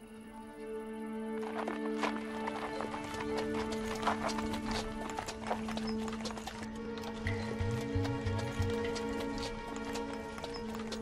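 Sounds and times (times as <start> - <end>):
horse hooves clopping: 1.2 - 11.0.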